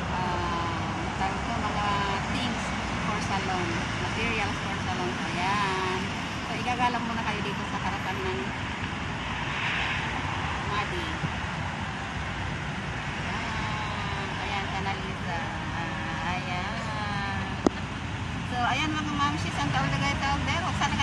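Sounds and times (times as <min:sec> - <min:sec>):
people talking: 0:00.0 - 0:08.5, 0:10.7 - 0:11.3, 0:13.2 - 0:17.8, 0:18.4 - 0:21.0
road traffic passing: 0:00.0 - 0:21.0.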